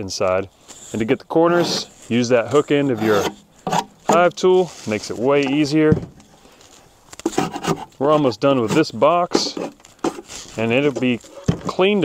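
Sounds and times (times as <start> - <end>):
person speaking: 0.0 - 3.4, 4.0 - 6.0, 8.0 - 9.8, 10.5 - 12.0
metal tool scraping wood: 0.7 - 5.7, 7.2 - 12.0.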